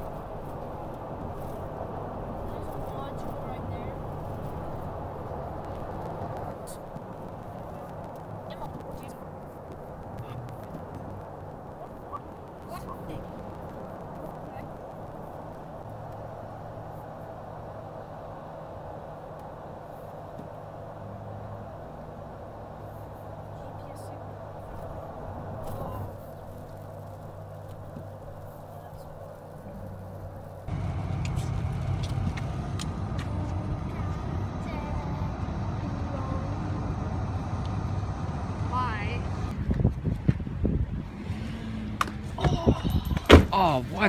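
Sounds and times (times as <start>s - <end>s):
car engine and tyre hum: 0.0s - 44.0s
tyres rumbling on wet road: 0.0s - 44.0s.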